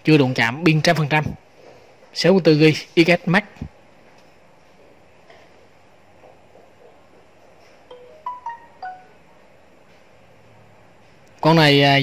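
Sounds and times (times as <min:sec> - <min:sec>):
phone alert chime: 0:07.9 - 0:09.2.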